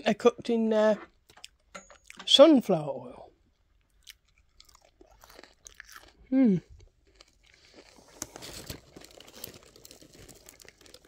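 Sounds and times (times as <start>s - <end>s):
paper wrapping crinkling: 7.9s - 11.0s.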